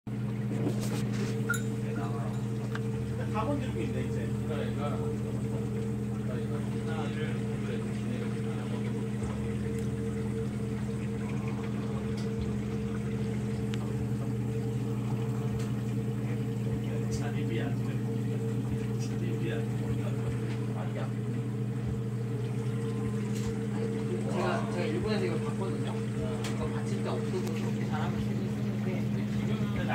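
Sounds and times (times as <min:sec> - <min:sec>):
small motor humming: 0:00.7 - 0:29.9.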